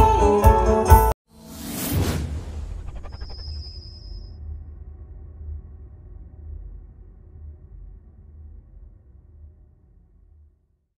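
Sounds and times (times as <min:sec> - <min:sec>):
whoosh sound effect: 0:01.3 - 0:04.4
low rumble: 0:01.4 - 0:10.8.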